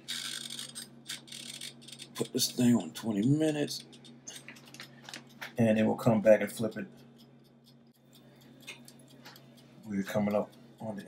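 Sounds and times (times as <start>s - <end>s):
timer dial clicking: 4.8s - 11.0s.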